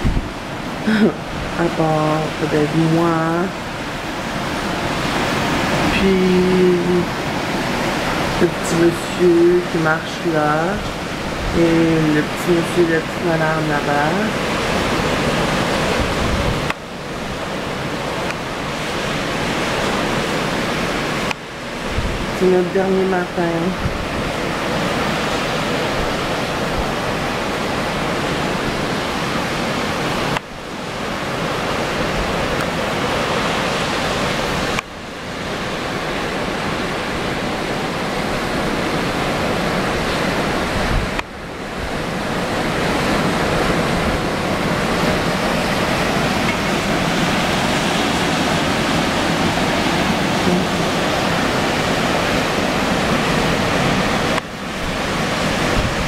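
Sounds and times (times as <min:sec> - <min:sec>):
ocean surf breaking: 0:00.0 - 0:56.0
wind on microphone: 0:00.0 - 0:56.0.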